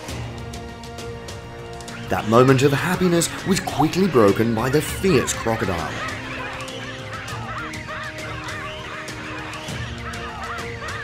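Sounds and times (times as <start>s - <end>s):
background music: 0.0s - 11.0s
baboons screaming: 1.9s - 11.0s.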